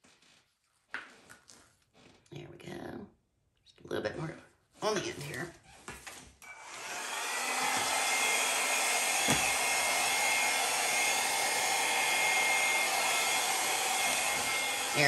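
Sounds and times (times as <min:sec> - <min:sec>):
hair dryer running: 0:06.4 - 0:15.0.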